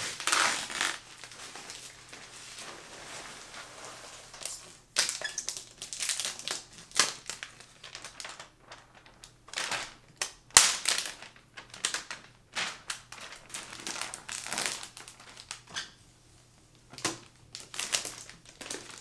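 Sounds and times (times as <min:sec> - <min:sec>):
sharp plastic crackle: 0:00.0 - 0:02.2, 0:04.4 - 0:15.7, 0:16.9 - 0:19.0
plastic wrap crinkling: 0:00.0 - 0:15.8, 0:16.8 - 0:19.0.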